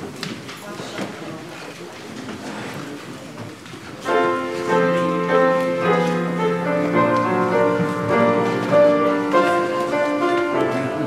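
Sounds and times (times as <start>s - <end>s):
faint murmur of voices: 0.0s - 11.0s
people shuffling and rustling: 0.0s - 11.0s.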